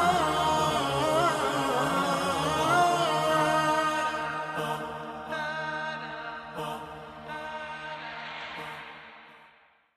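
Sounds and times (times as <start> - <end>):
vocal chant music: 0.0 - 9.9.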